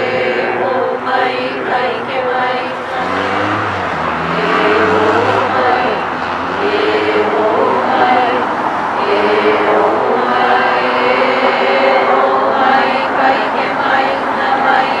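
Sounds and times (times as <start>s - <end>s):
group of voices chanting: 0.0s - 15.0s
vehicle engine rumble passing: 0.0s - 15.0s.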